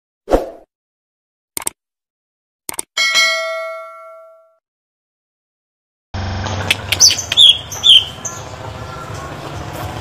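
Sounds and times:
bright bell ding: 3.0s - 4.6s.

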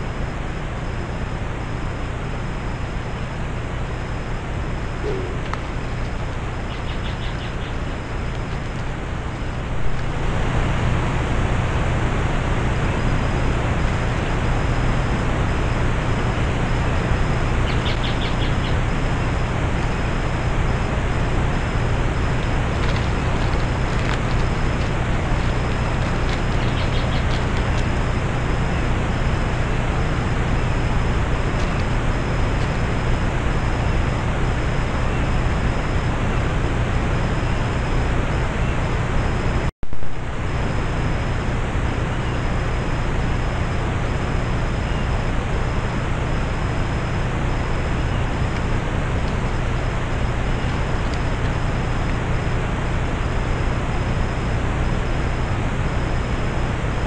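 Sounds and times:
faint pulsing high whine: 0.0s - 57.0s
low electronic hum: 0.0s - 57.0s
steady loud hiss: 0.0s - 57.0s.

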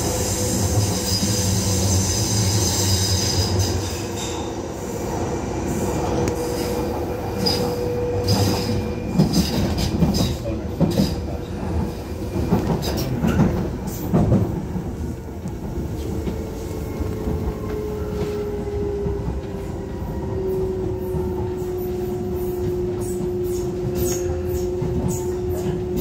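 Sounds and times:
train wheels clacking on rail joints: 6.3s - 19.6s.

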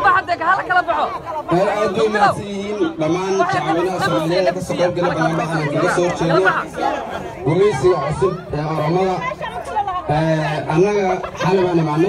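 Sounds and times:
voices chattering: 0.0s - 12.0s
man talking into microphone: 1.5s - 9.3s, 10.1s - 12.0s.

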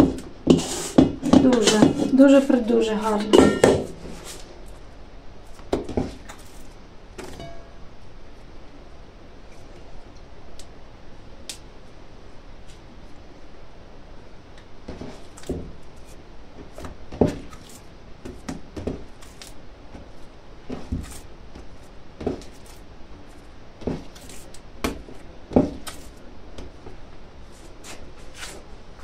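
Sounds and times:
dough squishing: 14.8s - 28.8s.

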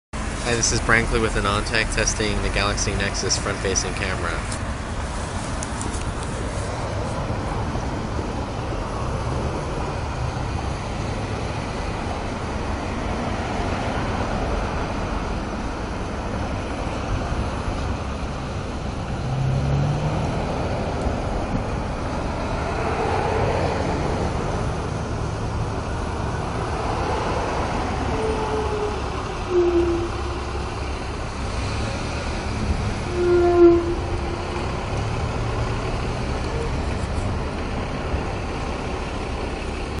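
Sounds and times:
rumble of passing vehicles: 0.2s - 40.0s
short pitched squeals: 27.8s - 31.2s, 32.4s - 35.0s.

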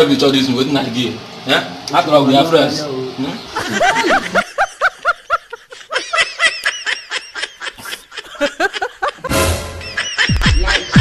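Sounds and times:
person laughing: 3.6s - 11.0s.

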